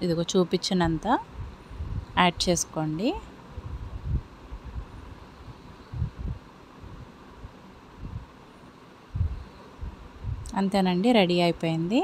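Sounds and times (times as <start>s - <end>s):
faint steady hiss: 0.0s - 12.0s
dull low thumps: 0.9s - 2.5s, 3.6s - 4.9s, 5.9s - 7.1s, 9.1s - 10.5s.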